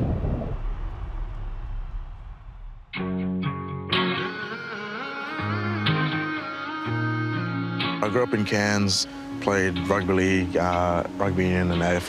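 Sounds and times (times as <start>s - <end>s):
low rumble: 0.0s - 3.2s.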